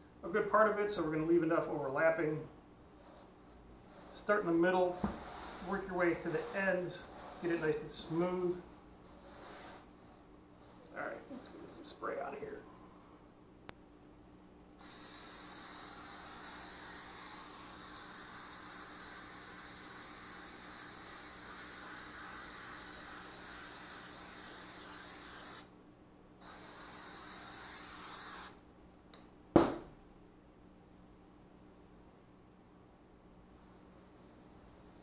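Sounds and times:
aerosol can spraying: 14.8 - 25.7, 26.4 - 28.6
can knocking on table: 29.6 - 29.9.

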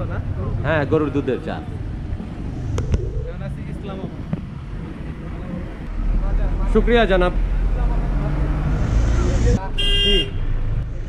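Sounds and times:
street traffic rumble: 0.0 - 11.0
vehicle horn honk: 9.7 - 10.5.

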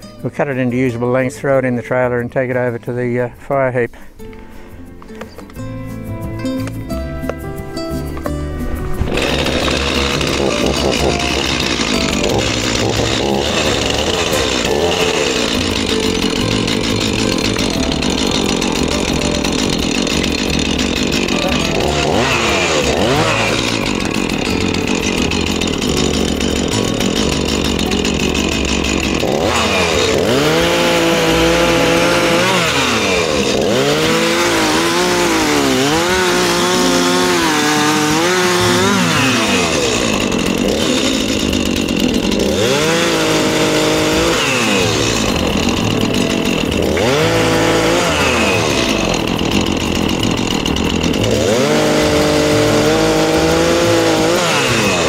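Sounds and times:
chainsaw cutting wood: 8.0 - 55.0.

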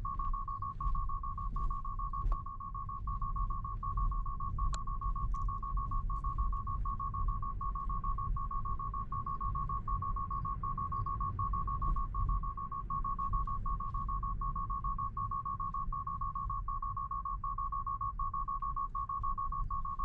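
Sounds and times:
low rumble of rolling car: 0.0 - 20.0
rapid high beeping alarm: 0.0 - 20.0.

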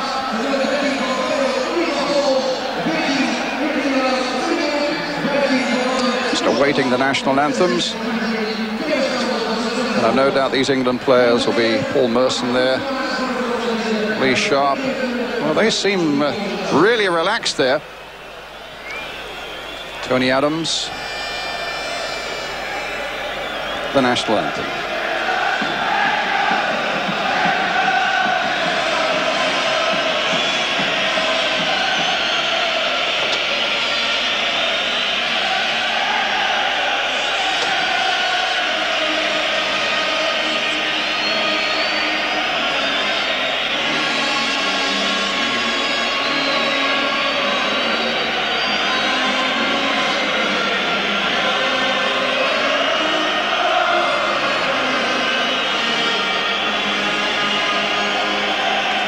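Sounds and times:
crowd singing and chanting: 0.0 - 59.0.

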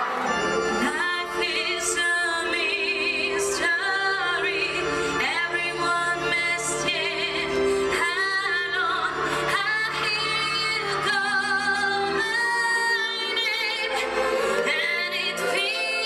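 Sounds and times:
woman singing with vibrato: 0.0 - 16.0.

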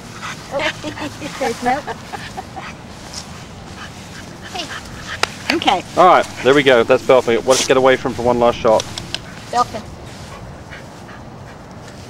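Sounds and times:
dog breathing: 0.0 - 12.0
low background rumble: 0.0 - 12.0.

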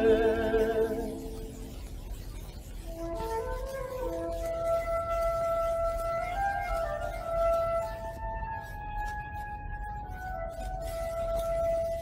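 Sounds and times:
music from a record: 0.0 - 1.7.

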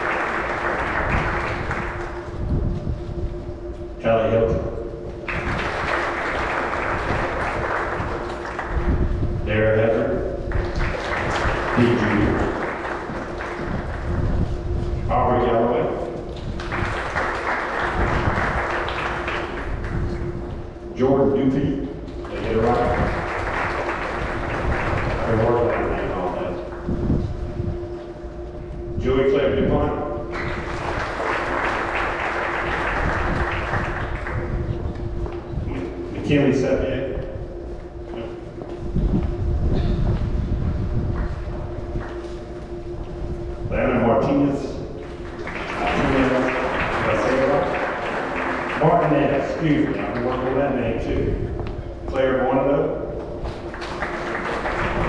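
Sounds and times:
audience applauding: 0.0 - 2.8, 5.2 - 9.2, 10.4 - 14.8, 16.2 - 20.6, 22.1 - 27.1, 30.3 - 35.9, 45.0 - 52.3, 53.4 - 55.0
steady low tone: 0.0 - 55.0.

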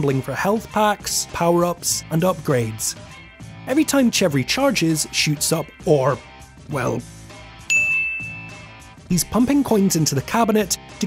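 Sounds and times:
quiet background music: 0.0 - 11.0
high clear ding: 7.7 - 8.6.

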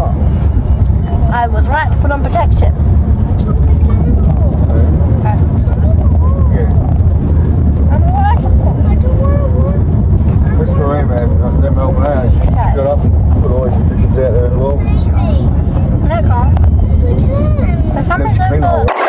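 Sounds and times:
car cabin rumble: 0.0 - 18.8
music: 0.0 - 18.9
voices: 0.0 - 19.0.

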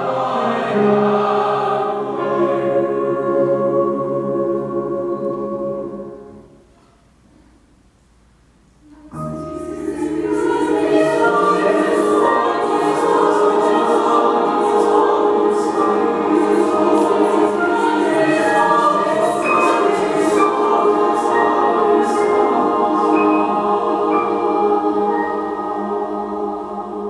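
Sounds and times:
choir singing sustained chords: 0.0 - 6.7, 8.9 - 27.0.

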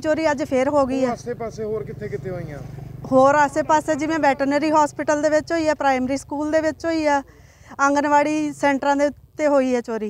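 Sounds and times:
vehicle engine running: 0.0 - 8.8.

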